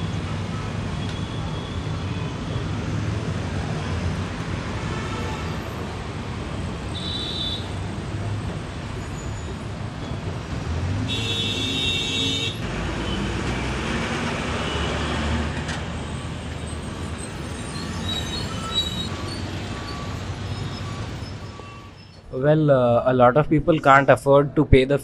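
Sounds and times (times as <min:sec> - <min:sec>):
street traffic noise: 0:00.0 - 0:25.0
vehicle horn: 0:04.8 - 0:05.6, 0:06.9 - 0:07.7, 0:11.1 - 0:13.2.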